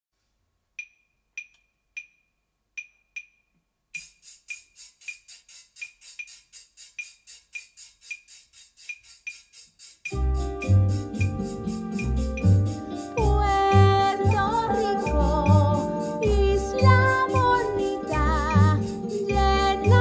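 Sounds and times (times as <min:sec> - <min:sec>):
shaker shaking: 0:04.0 - 0:20.0.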